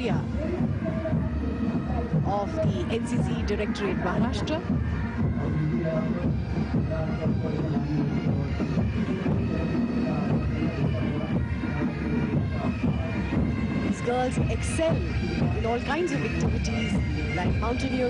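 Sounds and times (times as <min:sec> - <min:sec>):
marching band music: 0:00.0 - 0:18.0.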